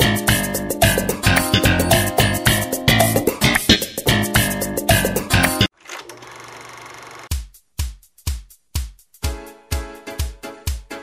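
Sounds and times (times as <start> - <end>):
guitar-led music: 0.0 - 5.7
film projector clatter: 5.7 - 7.3.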